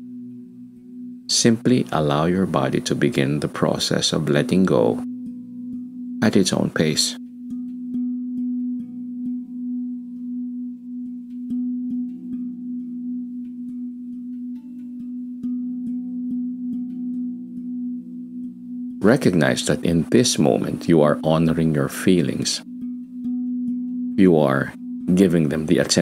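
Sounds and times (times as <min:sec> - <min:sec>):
meditation music drone: 0:00.0 - 0:26.0.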